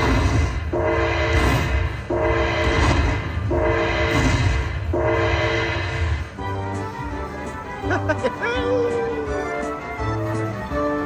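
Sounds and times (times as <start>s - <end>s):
noisy rush: 0.0s - 7.9s.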